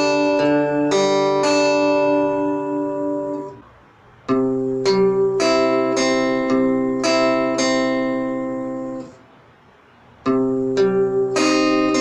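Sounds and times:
acoustic guitar fingerpicking: 0:00.0 - 0:09.3, 0:10.1 - 0:12.0.

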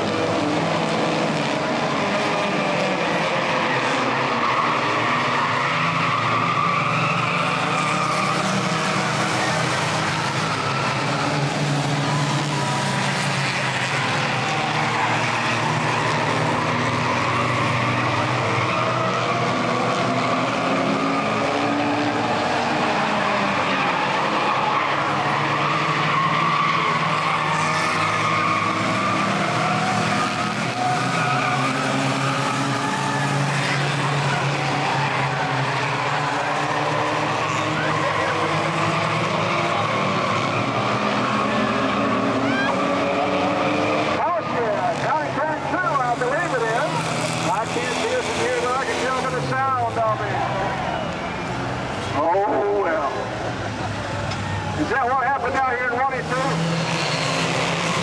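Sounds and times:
race car engines: 0:00.0 - 0:58.0
road noise: 0:00.0 - 0:58.0
tyre squeal: 0:23.1 - 0:43.3.

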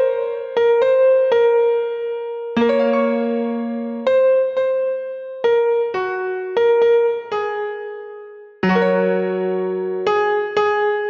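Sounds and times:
electric piano slow melody: 0:00.0 - 0:11.0.

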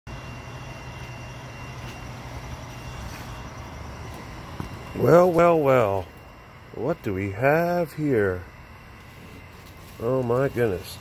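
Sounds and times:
faint high whine: 0:00.1 - 0:11.0.

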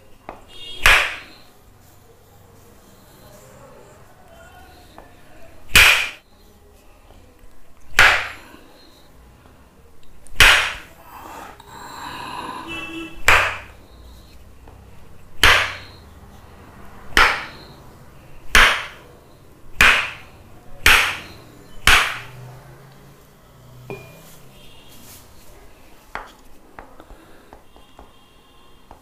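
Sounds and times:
wooden mallet knocking stick: 0:15.4 - 0:15.9, 0:17.2 - 0:17.6, 0:20.8 - 0:21.3.

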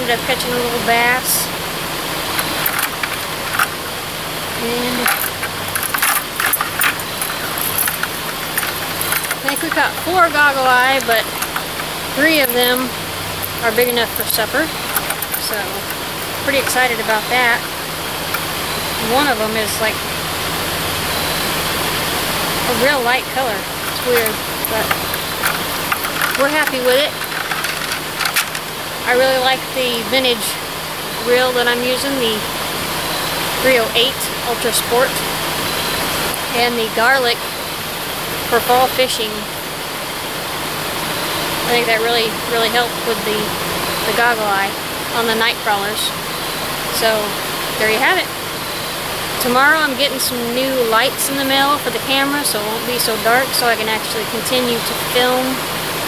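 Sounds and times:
steady low hum: 0:00.0 - 0:56.0
river water rushing: 0:01.4 - 0:29.7
metal chain clinking and rattling: 0:02.3 - 0:03.8, 0:04.9 - 0:18.5, 0:23.8 - 0:28.9.

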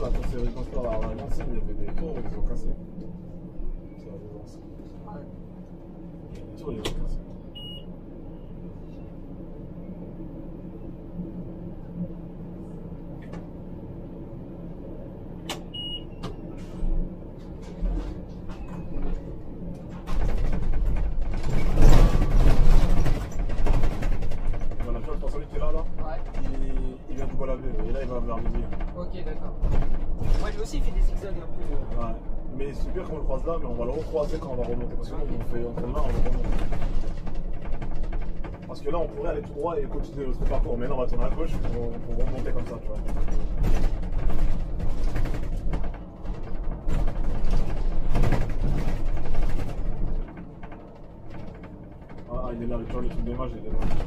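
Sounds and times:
bus engine hum: 0:00.0 - 0:54.0.

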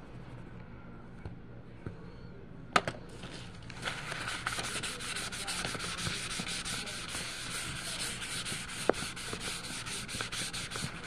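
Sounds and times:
tissue scrubbing on paper: 0:03.8 - 0:11.0.

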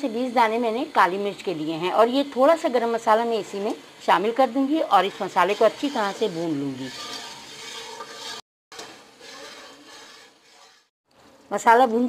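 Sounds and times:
spice paste frying: 0:00.0 - 0:12.0
ladle scraping a pot: 0:04.8 - 0:10.9.

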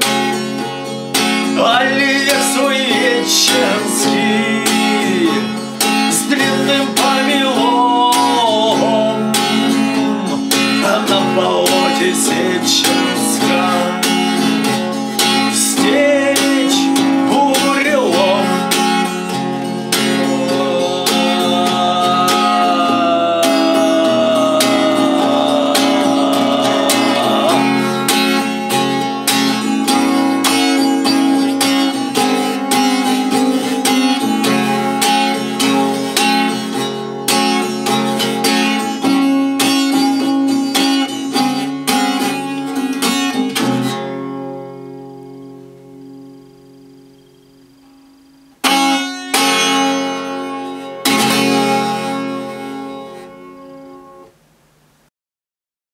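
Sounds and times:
acoustic guitar strummed chords: 0:00.0 - 0:55.0
person singing: 0:01.3 - 0:44.0.

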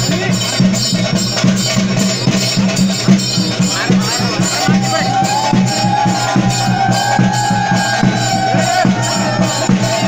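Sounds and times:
drums beating quick rhythm: 0:00.0 - 0:10.0.

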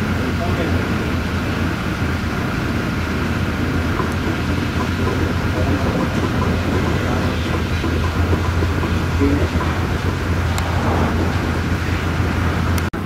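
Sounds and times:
diesel machinery rumbling: 0:00.0 - 0:13.0.

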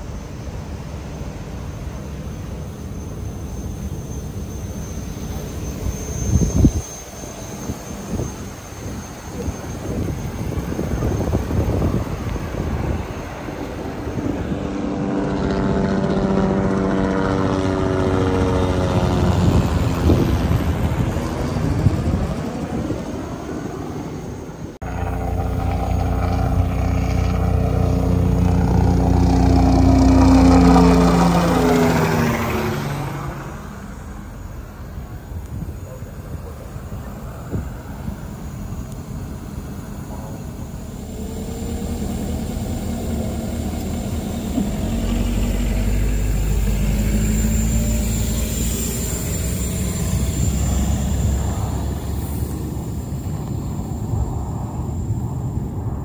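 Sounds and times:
engine passing by: 0:00.0 - 0:56.0.

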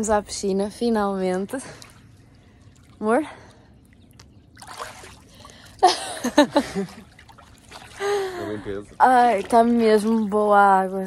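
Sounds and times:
pool water sloshing and splashing: 0:01.0 - 0:11.0.

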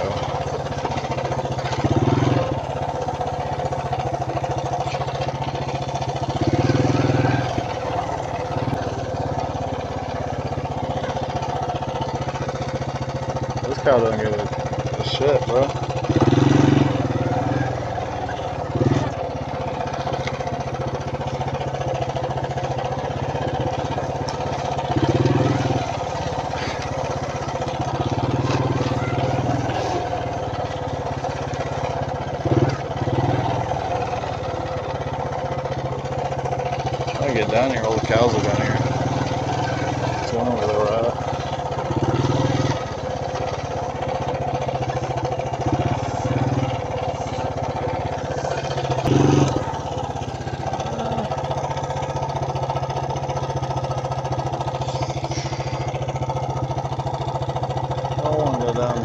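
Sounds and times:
atv engine running: 0:00.0 - 0:59.0.

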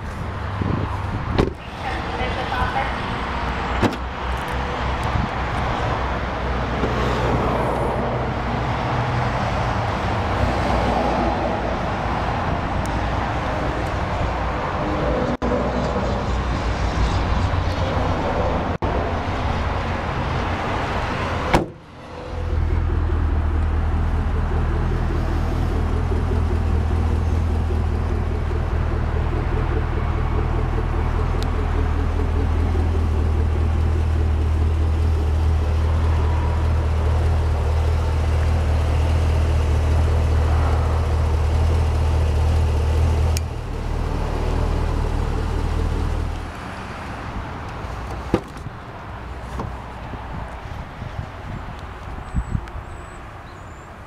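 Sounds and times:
vehicle engine rumbling: 0:00.0 - 0:54.0.

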